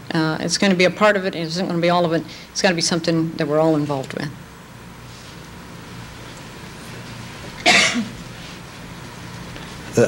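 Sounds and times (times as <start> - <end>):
loud cough: 7.6 - 8.2.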